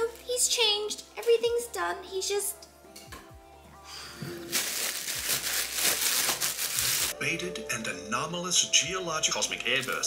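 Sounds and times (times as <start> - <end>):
quiet background music: 0.0 - 10.0
plastic bag crinkling: 4.4 - 7.2.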